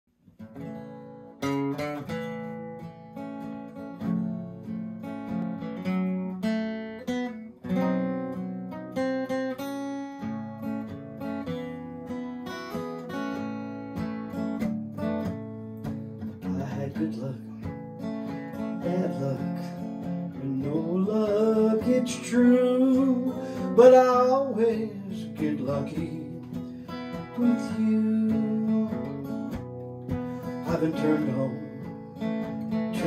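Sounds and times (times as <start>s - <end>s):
acoustic guitar picking and strumming: 0.2s - 33.0s.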